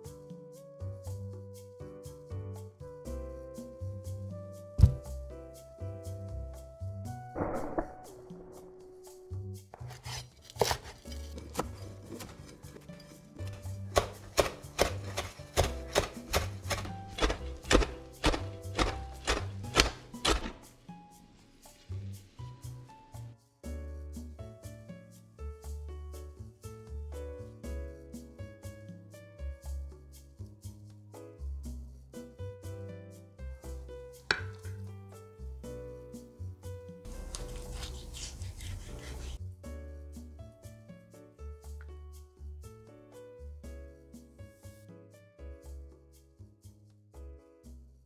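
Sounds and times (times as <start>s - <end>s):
background music: 0.0s - 48.0s
knife chopping on cutting board: 4.8s - 5.1s, 9.7s - 12.8s, 13.4s - 20.6s, 34.3s - 34.9s, 37.1s - 39.4s.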